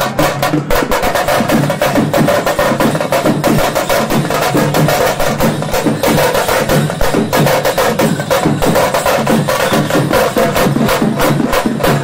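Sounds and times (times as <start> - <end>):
drums beaten fast: 0.0 - 12.0.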